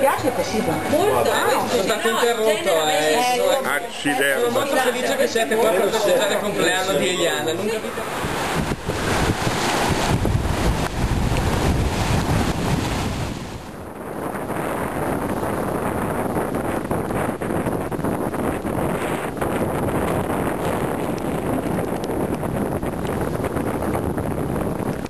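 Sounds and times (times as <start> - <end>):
waves breaking on rocks: 0.1 - 25.0
wind buffeting microphone: 8.0 - 25.0.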